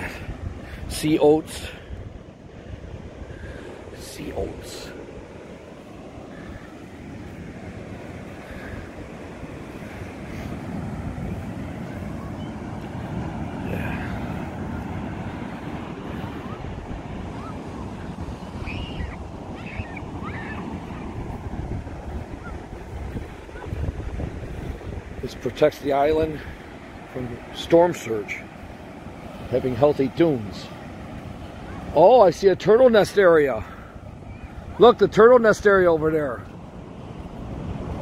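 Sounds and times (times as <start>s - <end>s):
wind buffeting microphone: 0.0s - 34.8s, 36.2s - 38.0s
ocean surf breaking: 0.0s - 38.0s.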